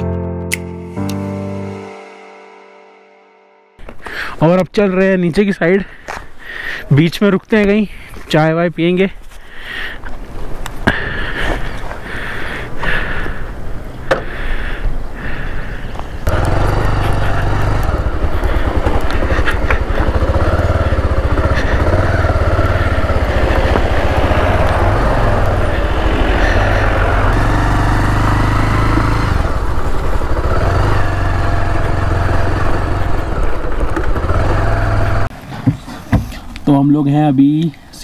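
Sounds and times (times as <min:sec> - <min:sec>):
motorcycle engine running: 0:16.2 - 0:35.3
wind rushing over microphone: 0:21.2 - 0:27.4.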